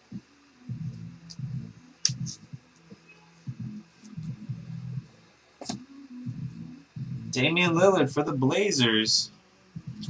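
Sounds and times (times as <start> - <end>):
low hum: 0.0 - 10.0
muffled bumps: 0.7 - 7.8, 9.8 - 10.0.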